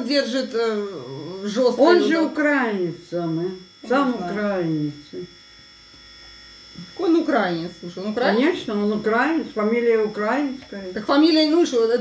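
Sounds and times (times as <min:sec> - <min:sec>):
faint electrical buzz with whine: 0:00.0 - 0:12.0.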